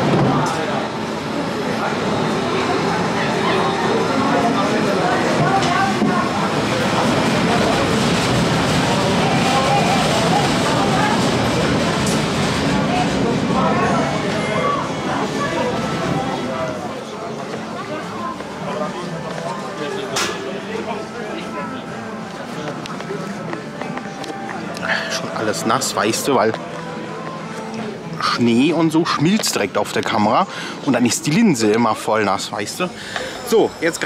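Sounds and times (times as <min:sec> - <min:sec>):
people's voices: 0:00.0 - 0:34.0
roller coaster rolling on track: 0:00.0 - 0:34.0.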